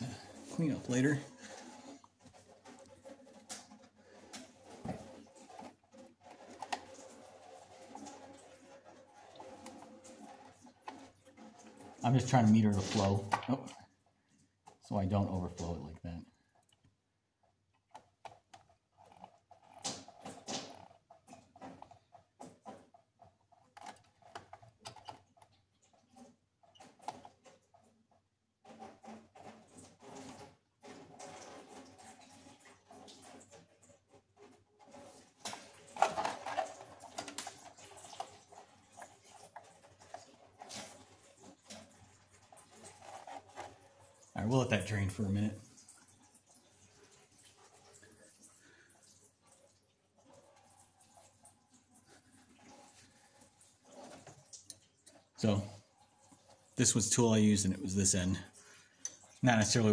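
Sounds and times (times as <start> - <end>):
coolant dribbling into container: 0.0 - 59.9.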